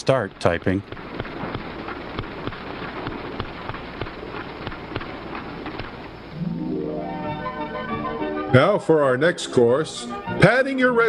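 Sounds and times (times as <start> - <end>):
old film soundtrack hiss: 0.0 - 11.0
music: 6.3 - 11.0.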